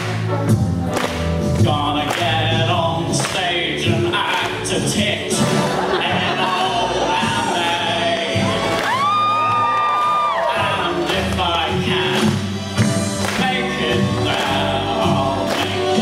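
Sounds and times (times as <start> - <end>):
recorded backing track: 0.0 - 16.0.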